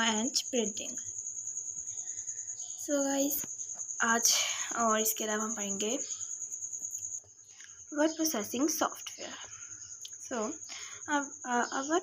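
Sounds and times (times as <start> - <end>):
insect chirping trill: 0.0 - 12.0.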